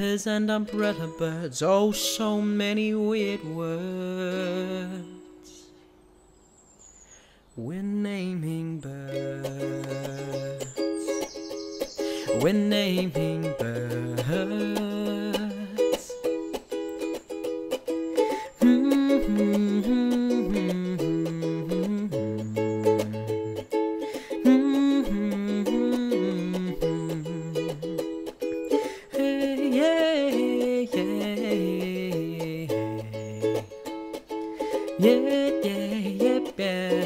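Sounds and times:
ukulele strumming: 0:00.0 - 0:05.6, 0:08.5 - 0:37.0.

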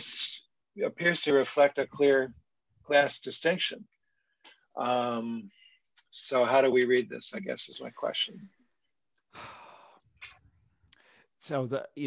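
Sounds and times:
person sighing: 0:09.3 - 0:10.0
short breath: 0:09.3 - 0:10.1, 0:10.9 - 0:11.3.

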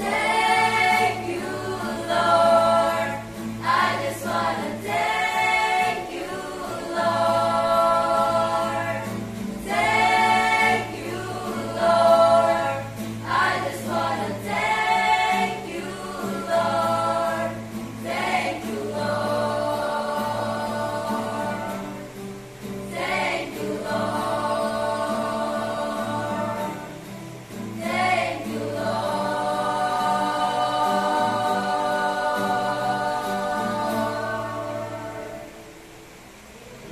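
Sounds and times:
choir singing worship song: 0:00.0 - 0:36.9.

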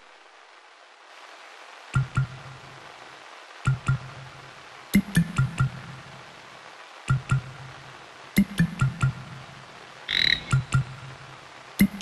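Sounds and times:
rain hiss: 0:00.0 - 0:12.0
frog croaking: 0:10.1 - 0:10.8.

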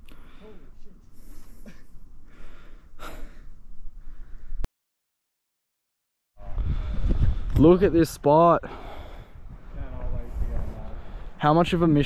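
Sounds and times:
person breathing out heavily: 0:00.1 - 0:04.6, 0:08.6 - 0:09.7
wind rumble on microphone: 0:06.4 - 0:08.2, 0:08.9 - 0:12.0.

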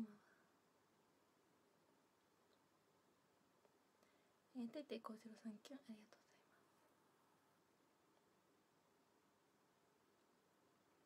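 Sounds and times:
woman speaking quietly: 0:04.5 - 0:06.7.

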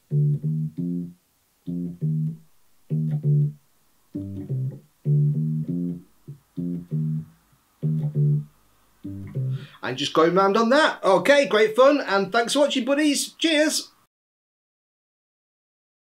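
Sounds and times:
electric bass riff: 0:00.0 - 0:03.6, 0:04.2 - 0:09.8.

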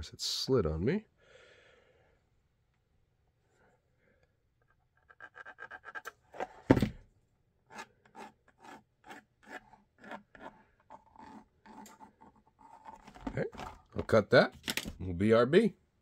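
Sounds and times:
pencil scratching on plastic: 0:04.7 - 0:06.5, 0:07.7 - 0:13.9.

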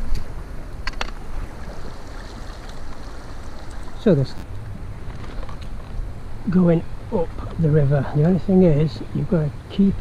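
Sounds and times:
river running over stones: 0:01.1 - 0:05.8.

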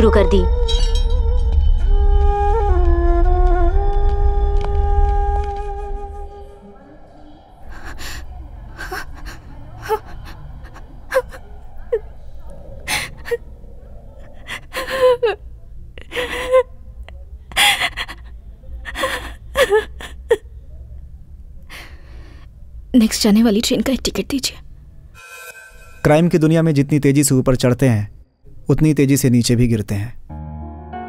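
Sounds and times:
woman sobbing: 0:07.7 - 0:12.1, 0:12.9 - 0:13.4, 0:14.3 - 0:16.8, 0:17.5 - 0:20.5.

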